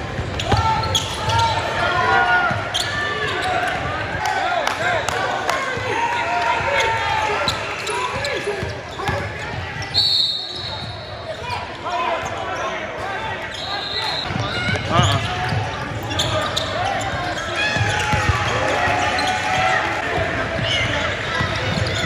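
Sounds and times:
hubbub of echoing voices: 0.0 - 10.0, 10.8 - 22.0.

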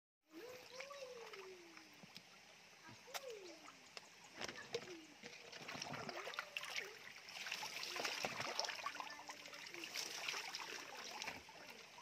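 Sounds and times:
water splashing and trickling: 0.3 - 12.0.

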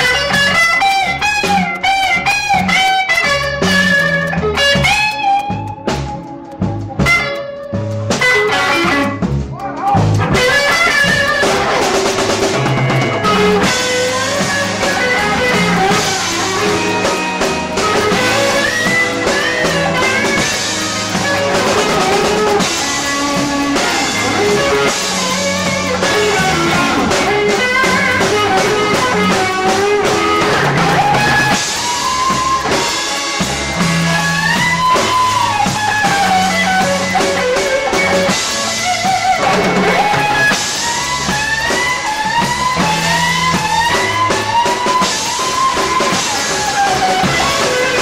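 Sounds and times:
blues band playing: 0.0 - 48.0
lead guitar lines: 0.0 - 48.0.

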